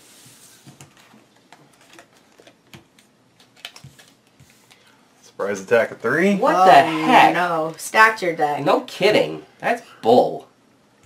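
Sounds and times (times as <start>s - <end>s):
playing cards clicking and tapping: 0.7s - 4.8s.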